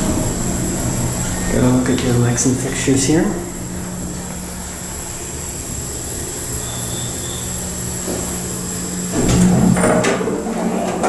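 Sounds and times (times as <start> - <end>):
elevator humming: 0.0 - 11.0
elevator doors sliding open: 6.6 - 11.0.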